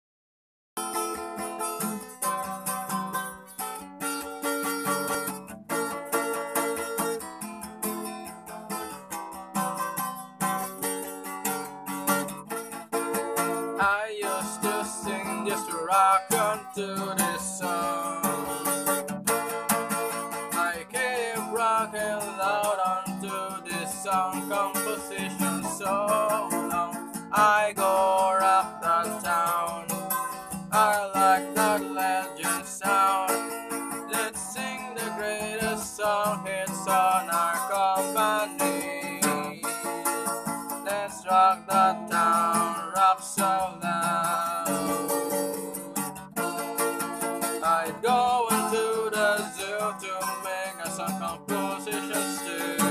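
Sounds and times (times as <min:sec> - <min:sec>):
acoustic guitar strummed: 0:00.8 - 0:52.9
person singing: 0:13.8 - 0:18.7, 0:20.4 - 0:45.8, 0:47.4 - 0:52.9.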